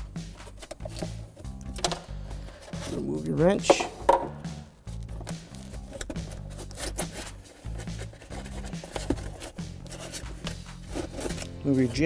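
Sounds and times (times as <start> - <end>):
background music with low notes: 0.0 - 12.0
tools knocking and scraping: 3.6 - 4.5.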